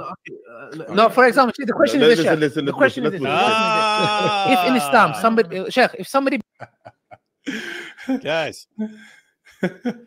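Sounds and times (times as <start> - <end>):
men talking over one another: 0.0 - 5.8
man holding long vowel: 3.2 - 5.4.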